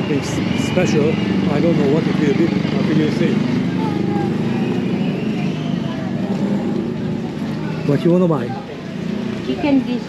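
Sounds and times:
engine running: 0.0 - 10.0
market voices: 0.0 - 10.0.

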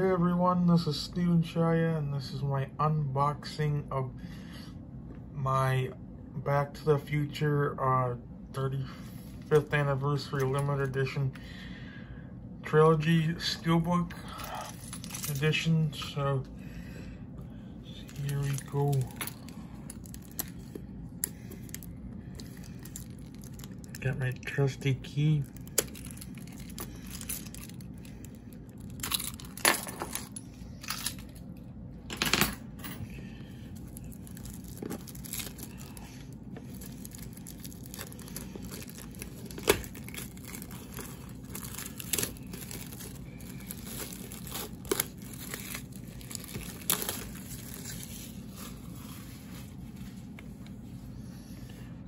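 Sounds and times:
shrink wrap tearing and crinkling: 17.9 - 31.6, 33.8 - 49.4.

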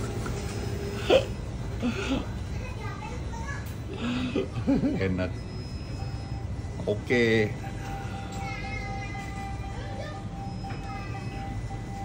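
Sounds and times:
distant children chattering: 0.0 - 4.7, 7.8 - 12.0.

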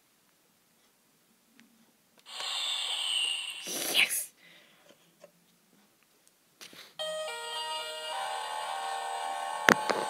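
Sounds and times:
electronic hissing noise effect: 2.3 - 4.2.

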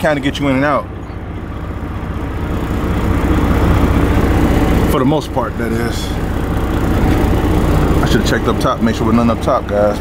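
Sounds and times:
diesel engine rumbling: 0.0 - 10.0.

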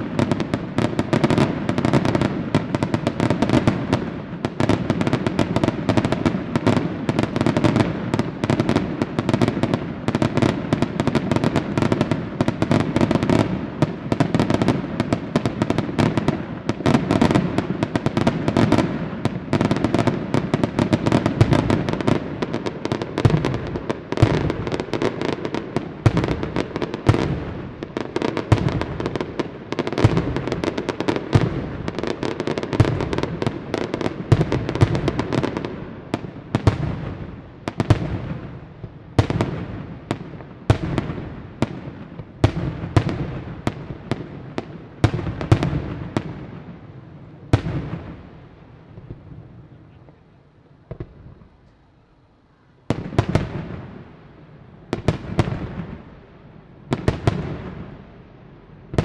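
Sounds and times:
fireworks bursts and bangs: 0.0 - 51.6, 52.8 - 56.2, 56.8 - 58.1, 58.7 - 59.0.

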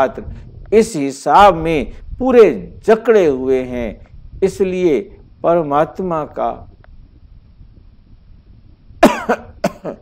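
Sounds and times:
man coughing: 9.0 - 10.0.

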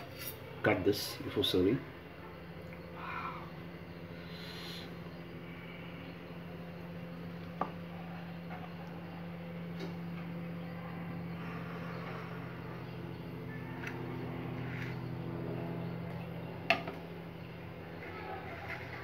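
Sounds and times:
low machine hum: 0.0 - 19.0.

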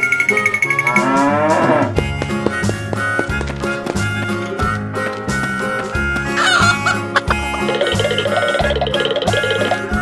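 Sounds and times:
background music: 0.0 - 10.0
cow mooing: 0.7 - 2.0.

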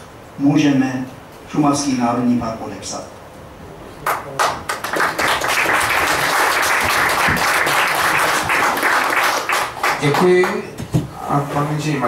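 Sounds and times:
audience applauding: 4.0 - 10.6.

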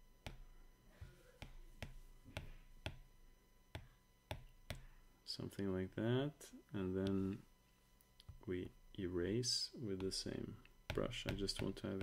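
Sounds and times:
stylus tapping glass screen: 0.2 - 3.1, 3.8 - 4.9, 10.0 - 12.0.

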